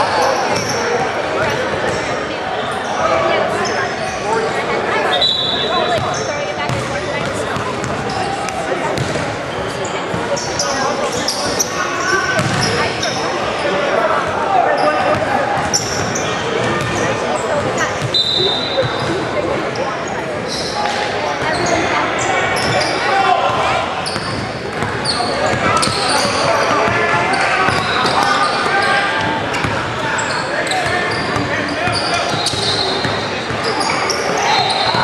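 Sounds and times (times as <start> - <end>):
sneaker squeaks: 0.0 - 4.4, 5.0 - 13.8, 14.7 - 35.0
spectators talking: 0.0 - 35.0.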